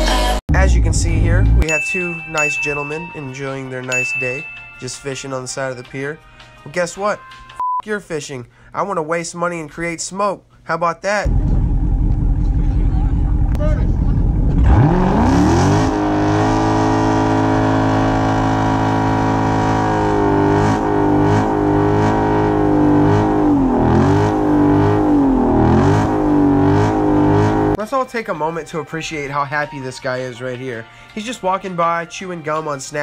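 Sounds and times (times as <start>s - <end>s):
car engine revving in burnout: 11.3s - 27.8s.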